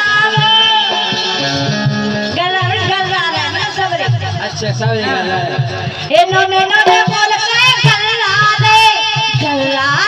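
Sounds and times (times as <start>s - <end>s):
woman singing folk song: 0.0s - 1.4s, 6.1s - 10.0s
harmonium: 0.0s - 10.0s.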